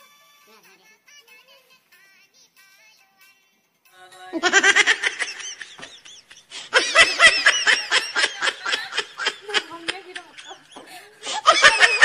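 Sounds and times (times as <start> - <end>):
high-pitched laughter: 4.4 - 12.0.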